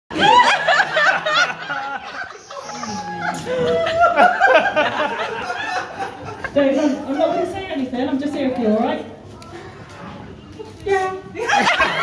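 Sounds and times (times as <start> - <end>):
people laughing: 0.1 - 7.9, 11.4 - 12.0.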